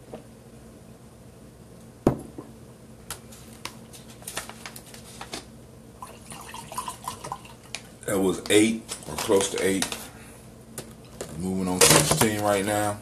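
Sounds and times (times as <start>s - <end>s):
water pouring into a glass: 6.0s - 7.6s.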